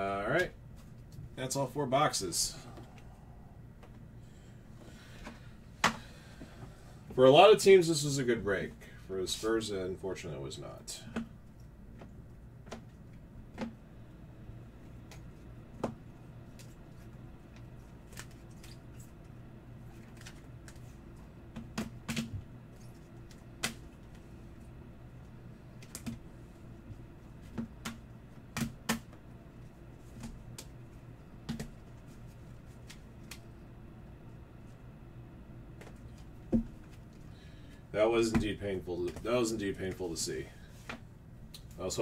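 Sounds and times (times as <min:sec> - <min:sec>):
low hum: 0:00.0 - 0:42.0.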